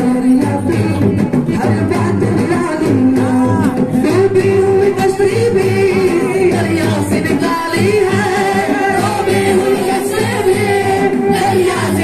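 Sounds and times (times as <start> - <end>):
young men singing together: 0.0 - 12.0.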